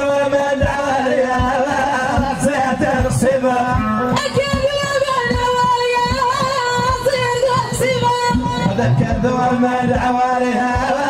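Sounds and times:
frame drum beats: 0.0 - 11.0
woman singing: 0.3 - 11.0.

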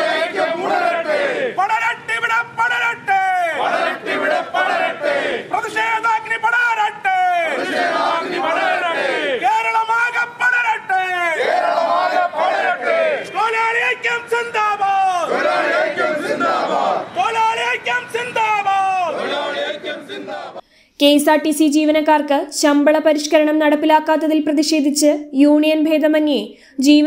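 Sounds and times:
men shouting slogans together: 0.0 - 20.6.

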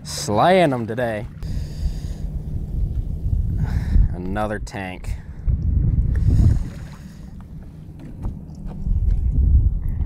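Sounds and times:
wind buffeting microphone: 1.2 - 10.0.

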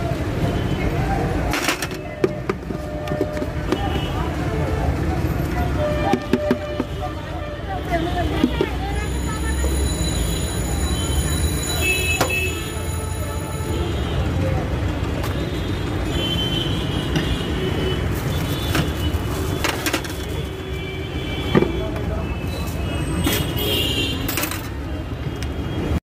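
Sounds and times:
road traffic rumble: 0.0 - 26.0.

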